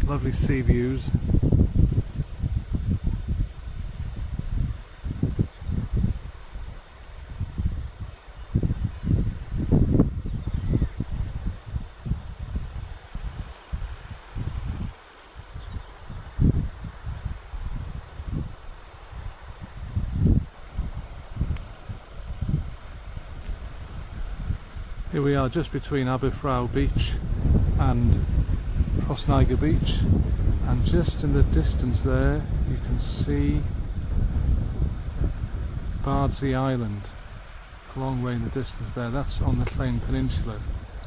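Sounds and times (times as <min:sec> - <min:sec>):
faint steady hiss: 0:00.0 - 0:41.0
wind buffeting microphone: 0:00.0 - 0:41.0.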